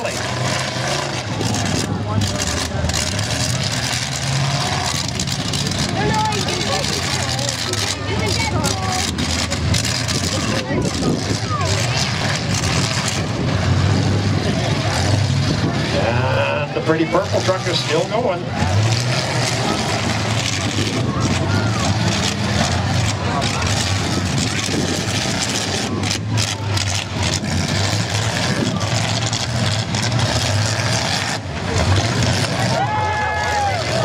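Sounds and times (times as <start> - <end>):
truck engines revving: 0.0 - 34.0
voices: 0.0 - 34.0.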